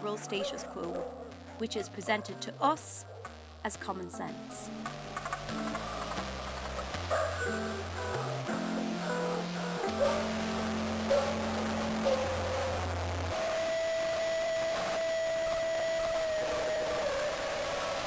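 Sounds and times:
held low music notes: 0.0s - 16.3s
long howl-like high tone: 11.3s - 18.0s.

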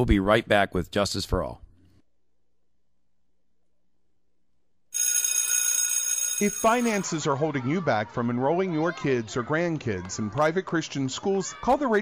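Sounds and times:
bell ringing: 5.0s - 7.2s.

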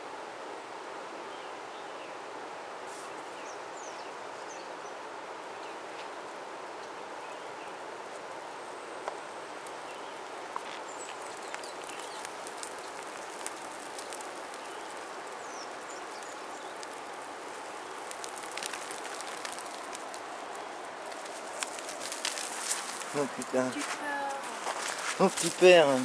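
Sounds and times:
steady outdoor hiss: 0.0s - 26.0s
dry grass and soil crackling: 10.5s - 26.0s.

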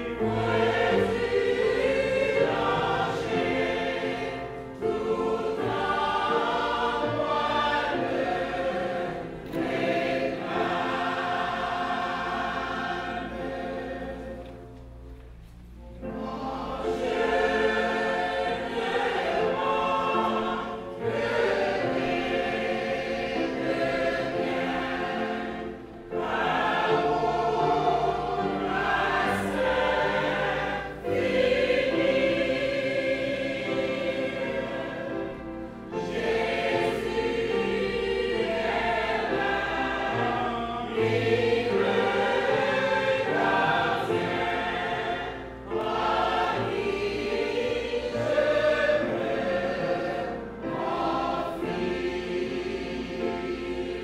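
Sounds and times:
choir singing: 0.0s - 54.0s.

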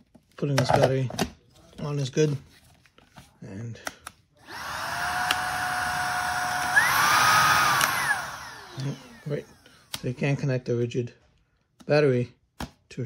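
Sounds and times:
vacuum motor whining: 4.4s - 10.0s.

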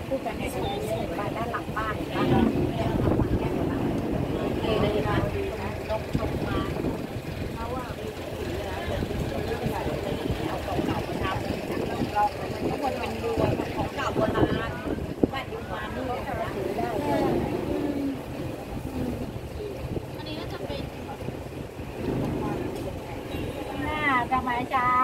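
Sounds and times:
boat engine running: 0.0s - 25.0s
people talking: 0.0s - 25.0s.

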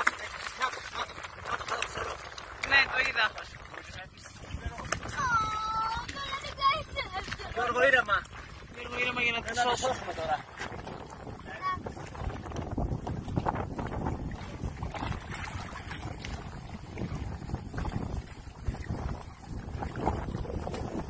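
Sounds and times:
water splashing against boat: 0.0s - 21.0s
wind buffeting microphone: 0.0s - 21.0s.

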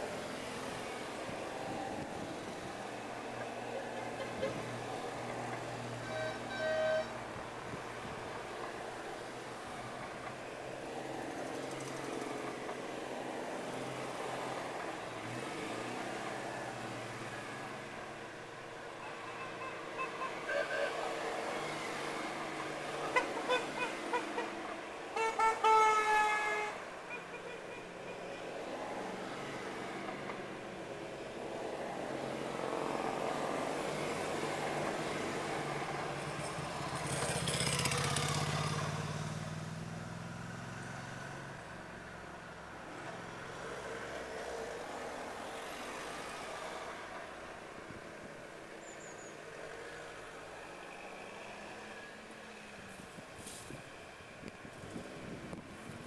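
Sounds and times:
car horns beeping: 6.0s - 7.2s, 19.0s - 21.0s, 25.2s - 27.9s
small car engines driving past: 32.8s - 42.0s.

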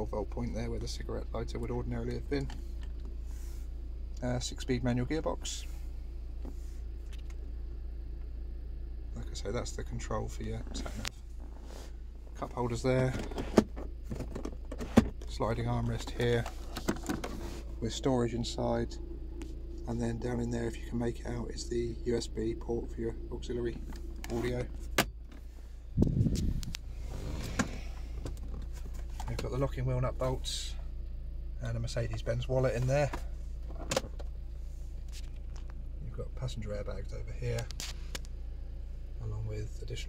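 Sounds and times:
low hum: 0.0s - 40.0s.

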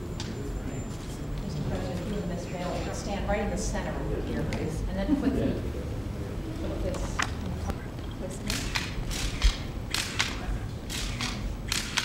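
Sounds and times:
murmur of voices: 0.0s - 12.0s
camera shutters clicking: 8.4s - 12.0s.

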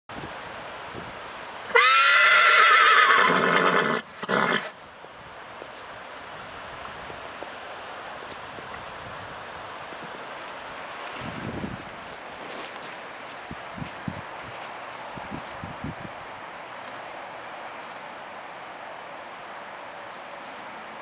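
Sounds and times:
horse whinnying loudly: 1.7s - 4.8s.

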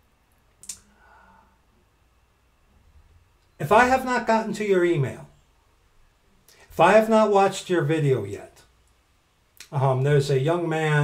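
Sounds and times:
sharp click: 0.6s - 0.8s.

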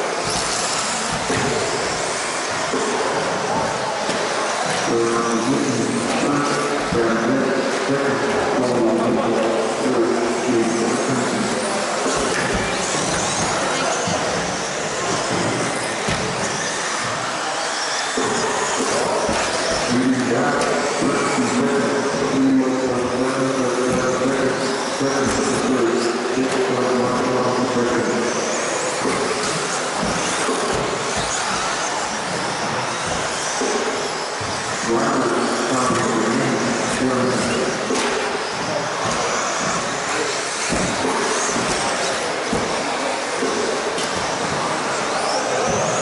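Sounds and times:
rc car motors whining: 0.0s - 46.0s.

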